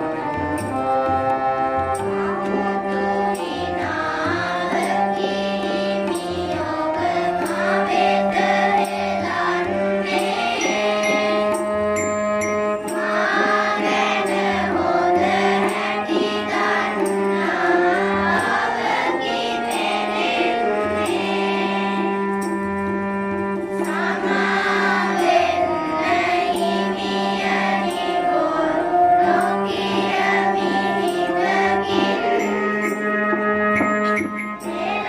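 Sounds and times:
children singing in unison: 1.9s - 11.8s, 12.8s - 22.4s, 23.7s - 33.2s, 34.6s - 35.0s
instrumental held notes: 7.9s - 26.5s, 28.3s - 35.0s
regular drum beat: 29.3s - 35.0s.

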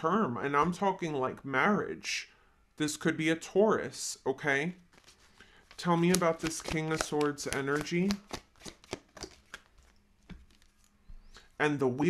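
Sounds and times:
cards being shuffled: 4.9s - 11.0s.

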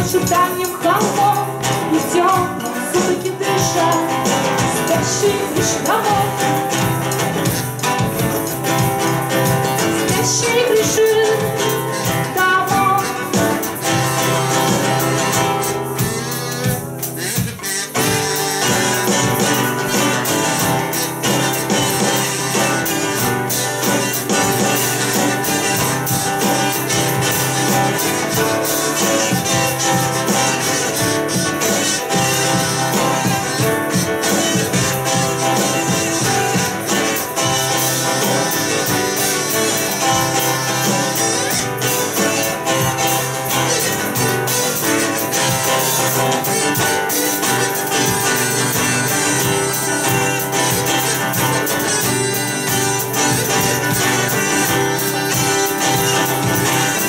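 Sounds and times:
acoustic guitar strumming: 0.0s - 57.0s
harmonica melody: 0.0s - 57.0s.

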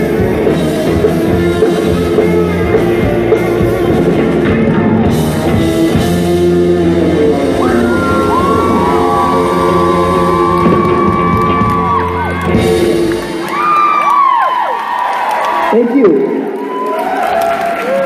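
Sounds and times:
electric guitars ringing chord: 0.0s - 14.0s
audience cheering and whooping: 7.4s - 18.0s.

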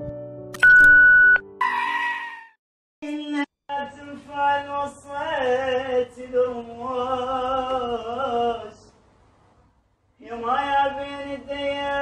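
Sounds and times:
high-pitched test beep tone: 0.6s - 2.4s.

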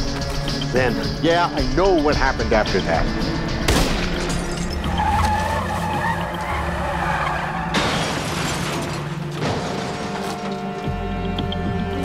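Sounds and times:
vehicle skidding and crashing: 3.9s - 10.8s.

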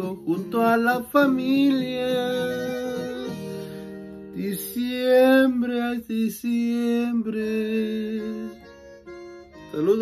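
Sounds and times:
backing music with guitar: 0.0s - 10.0s.

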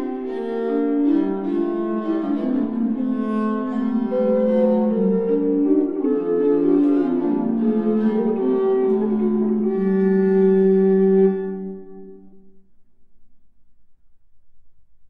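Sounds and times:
bowed strings playing polyphony: 0.0s - 12.7s.

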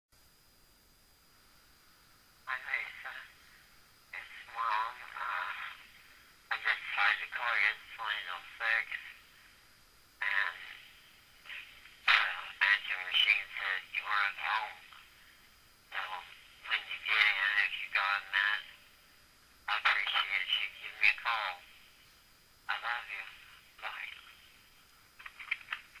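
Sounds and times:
person speaking over telephone: 2.5s - 3.4s, 4.2s - 9.2s, 10.2s - 15.1s, 15.9s - 18.9s, 19.7s - 21.8s, 22.7s - 24.5s.

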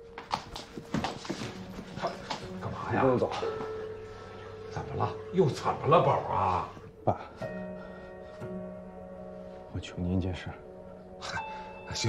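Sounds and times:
footsteps on hard floor: 0.0s - 3.9s.

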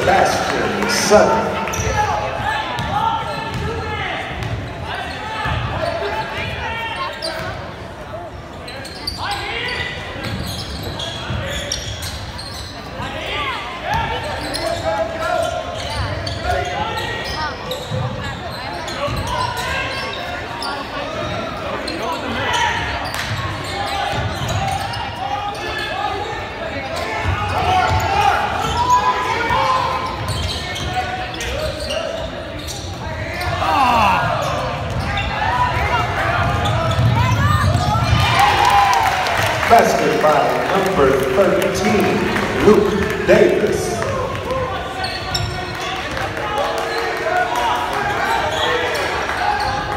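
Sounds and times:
players and spectators voices: 0.0s - 49.9s
basketball bouncing on gym floor: 2.7s - 4.7s.

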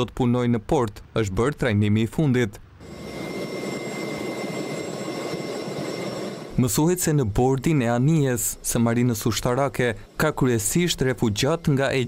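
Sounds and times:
helicopter engine and rotor: 2.8s - 8.7s
high whining tones: 2.8s - 12.0s.

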